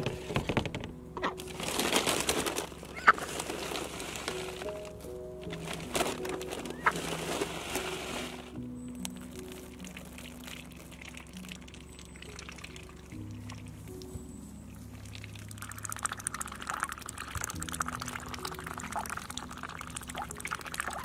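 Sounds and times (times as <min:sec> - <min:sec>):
slow background music: 0:00.0 - 0:21.0
ducks splashing and slurping water: 0:01.1 - 0:21.0.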